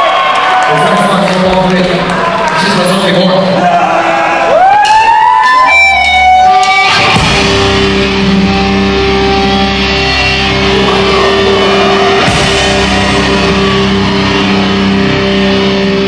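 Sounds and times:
live rock band: 4.6s - 16.0s
electric guitar sliding up: 5.5s - 16.0s.

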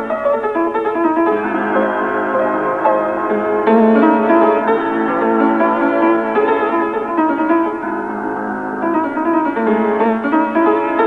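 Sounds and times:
piano melody: 0.0s - 11.0s.

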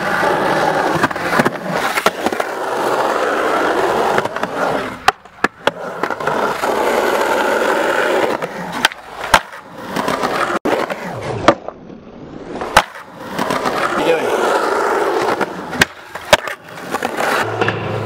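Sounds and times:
skateboard clacking on ground: 0.0s - 11.8s, 12.6s - 18.0s
skateboard wheels rolling on concrete: 0.0s - 18.0s.

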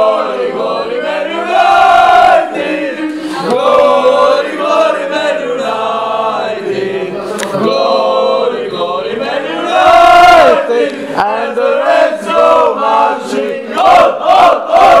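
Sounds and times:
men singing a chant together: 0.0s - 15.0s.

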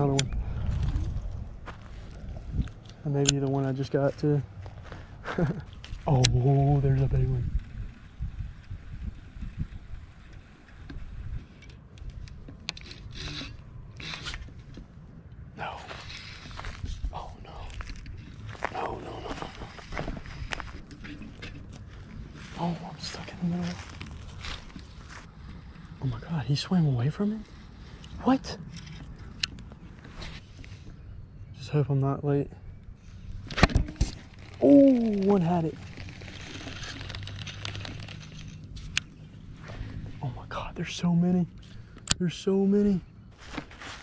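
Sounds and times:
wind rumble on microphone: 0.0s - 26.6s
footsteps on dry grass and leaves: 0.4s - 3.0s, 3.9s - 6.2s, 14.4s - 26.4s, 33.4s - 40.2s, 43.3s - 44.0s
rustling handling noise: 10.4s - 26.0s, 33.1s - 40.4s, 43.3s - 44.0s.

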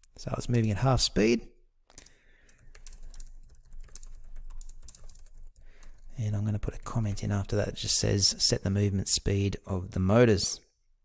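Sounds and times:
typing on computer keyboard: 1.9s - 6.1s.

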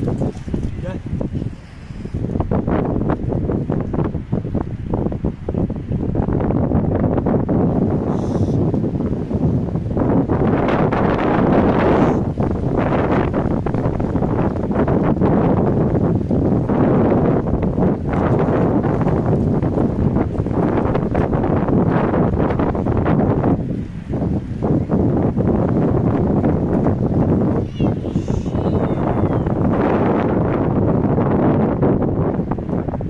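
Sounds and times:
wind buffeting microphone: 0.0s - 33.0s.

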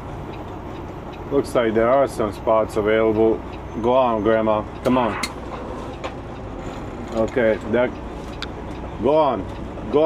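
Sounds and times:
diesel engine running in cab: 0.0s - 10.0s.

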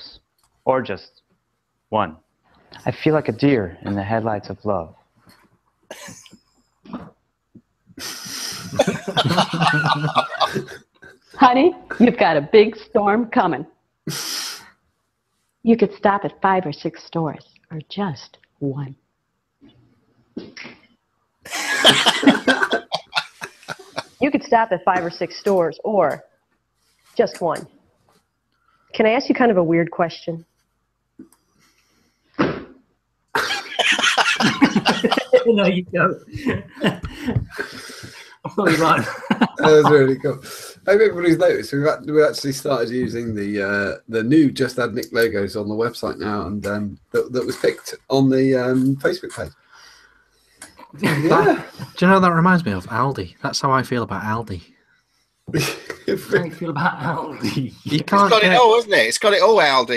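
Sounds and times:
person coughing: 5.9s - 6.2s, 8.1s - 10.8s, 21.5s - 24.0s, 33.4s - 35.6s, 36.4s - 40.7s, 51.0s - 51.9s, 55.6s - 56.4s
person stifled laugh: 5.9s - 6.3s, 8.3s - 10.8s, 21.5s - 24.1s, 33.4s - 35.7s, 36.4s - 41.6s, 51.0s - 51.9s, 55.6s - 56.5s.

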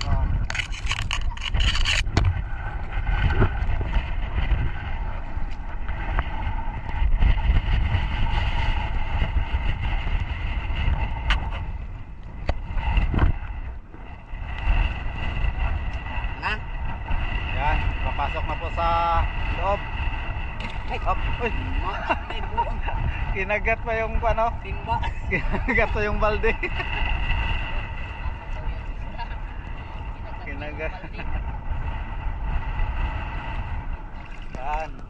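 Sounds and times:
distant engine hum: 0.0s - 35.0s
wind rumbling on microphone: 0.0s - 35.0s.

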